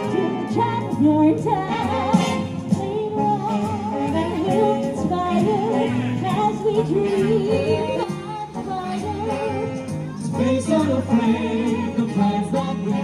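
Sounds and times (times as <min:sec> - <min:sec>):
backing band: 0:00.0 - 0:13.0
singers holding vibrato notes: 0:00.0 - 0:13.0.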